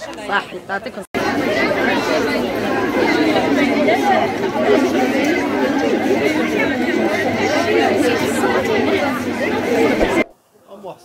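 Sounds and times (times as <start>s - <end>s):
crowd of adults and children talking: 0.0s - 11.0s.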